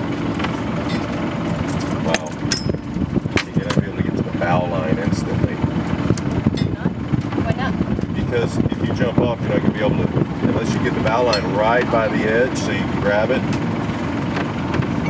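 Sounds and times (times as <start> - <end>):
diesel engine running: 0.0 - 15.0.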